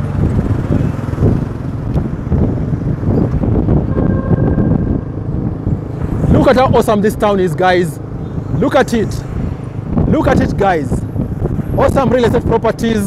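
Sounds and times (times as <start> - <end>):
road rumble: 0.0 - 13.0
steady engine: 0.0 - 13.0
wind buffeting microphone: 0.0 - 13.0.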